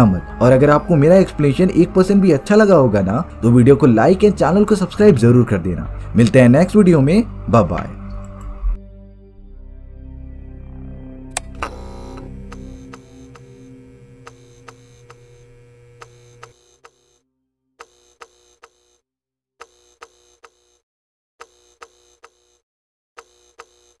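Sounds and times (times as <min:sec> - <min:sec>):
music ending on held chord: 0:08.8 - 0:14.6.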